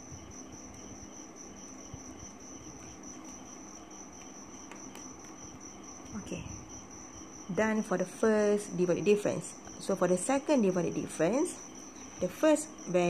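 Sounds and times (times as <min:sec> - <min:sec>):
cricket chirping: 0:00.0 - 0:13.0.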